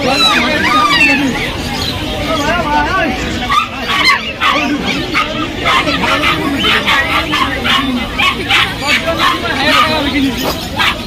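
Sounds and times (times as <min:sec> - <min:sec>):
crowd chatter: 0:00.0 - 0:11.0
puppies yipping and barking: 0:00.0 - 0:11.0.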